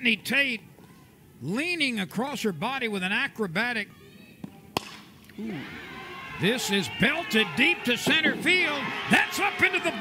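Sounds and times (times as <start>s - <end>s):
faint background noise: 0.0s - 10.0s
bat hitting ball crack: 4.4s - 5.3s.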